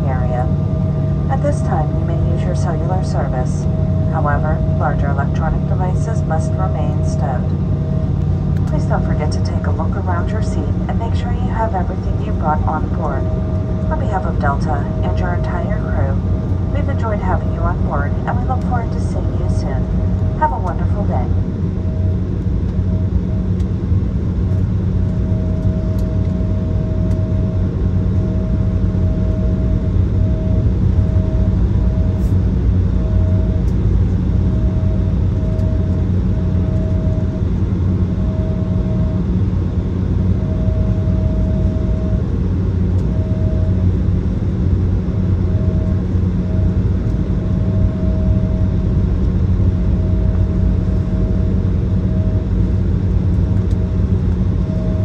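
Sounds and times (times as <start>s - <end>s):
jet engines idling drone: 0.0s - 55.0s.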